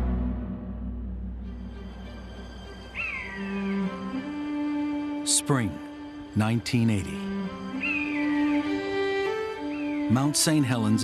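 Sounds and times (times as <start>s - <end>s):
soundtrack music: 0.0s - 11.0s.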